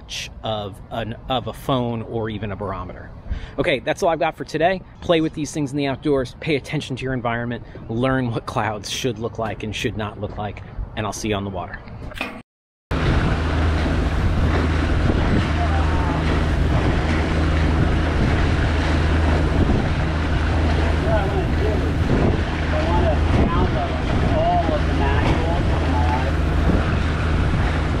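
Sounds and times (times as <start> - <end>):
water noise: 0.0 - 28.0
steady low hum: 12.9 - 28.0
wind on microphone: 12.9 - 28.0.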